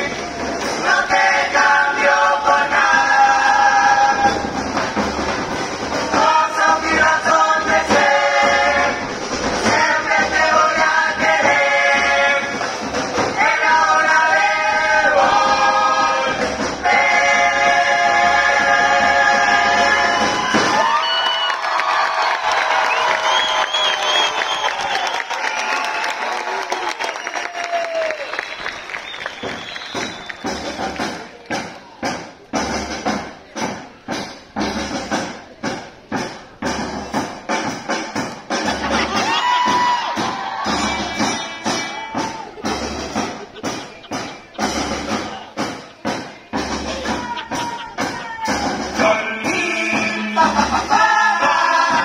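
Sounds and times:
percussion beat of sharp strikes: 0.0 - 21.2, 29.2 - 52.0
audience cheering and applause: 19.0 - 32.1, 38.6 - 52.0.

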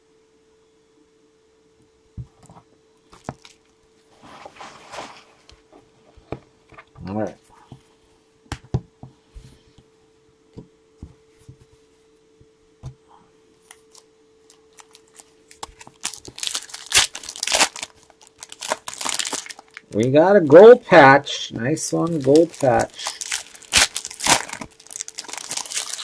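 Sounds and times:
card pack wrapper tearing: 14.7 - 20.0, 22.0 - 26.0.

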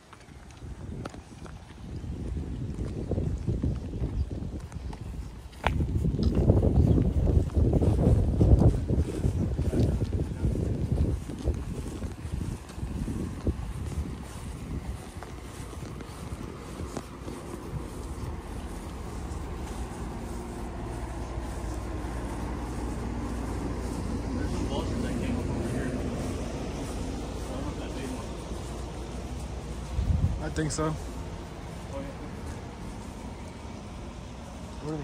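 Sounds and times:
wind rumbling on microphone: 0.0 - 35.0.

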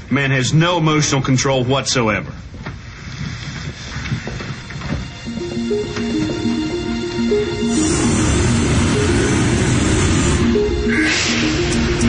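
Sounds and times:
low synth background music: 5.0 - 12.0.

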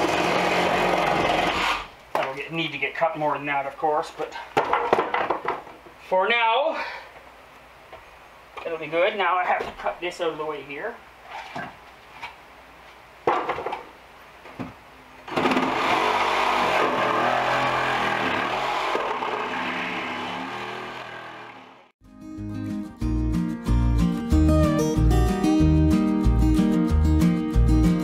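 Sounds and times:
power saw cutting wood: 0.0 - 1.9, 15.3 - 21.9
acoustic guitar music: 22.1 - 28.0.

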